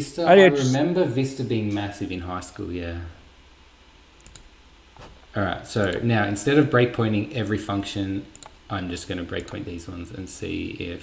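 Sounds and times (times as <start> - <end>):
computer mouse clicks: 4.2 - 4.5, 5.8 - 6.0, 8.3 - 8.6, 9.3 - 9.6.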